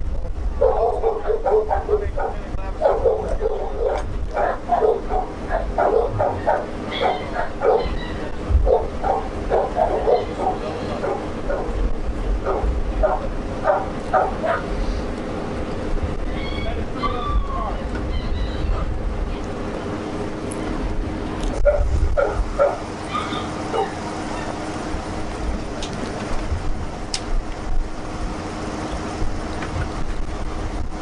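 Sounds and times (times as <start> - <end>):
dog barking: 0.6 - 11.8, 12.4 - 14.7, 21.6 - 24.6.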